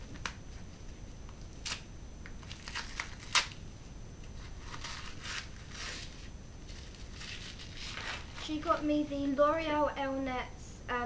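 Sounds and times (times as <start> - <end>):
wrapping paper tearing and crumpling: 1.6 - 3.6, 4.4 - 8.9.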